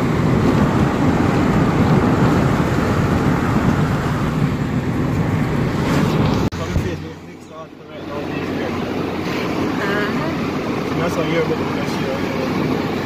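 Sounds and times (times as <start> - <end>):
car interior driving rumble: 0.0 - 13.0.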